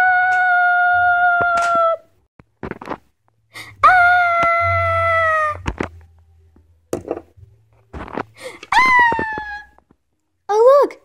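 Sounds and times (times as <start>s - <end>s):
breathy sounds: 3.4s - 3.9s, 8.0s - 8.7s
girl wailing: 3.8s - 5.7s, 8.7s - 9.8s.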